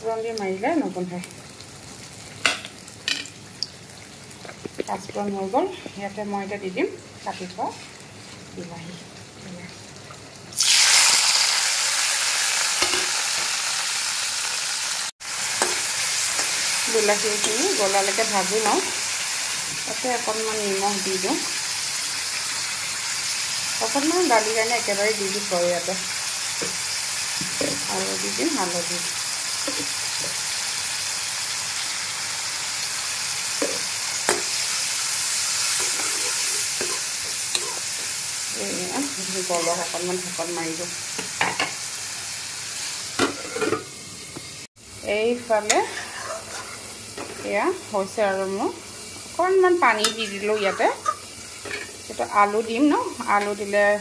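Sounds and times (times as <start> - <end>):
tomatoes sizzling in oil: 0.0 - 54.0.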